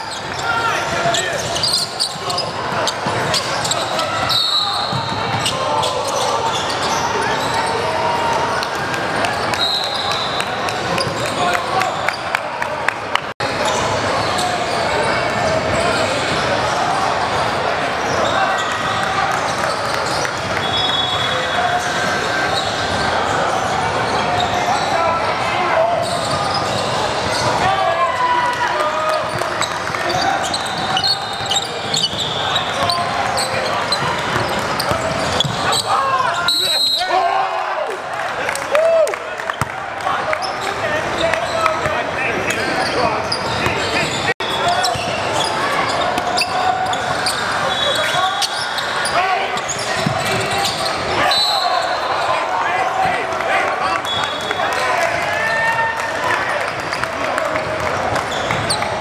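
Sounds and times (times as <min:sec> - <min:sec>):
people talking: 0:00.0 - 0:59.0.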